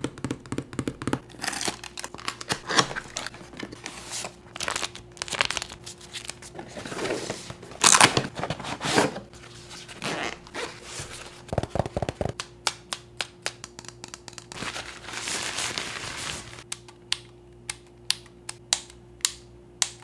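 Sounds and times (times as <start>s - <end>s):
tissue paper crinkling: 1.4s - 8.1s, 14.5s - 16.6s.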